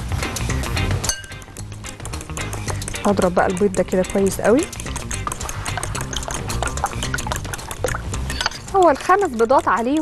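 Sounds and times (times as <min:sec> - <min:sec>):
fork clicking against glass bowl: 0:01.1 - 0:09.0
liquid sloshing: 0:02.7 - 0:08.8.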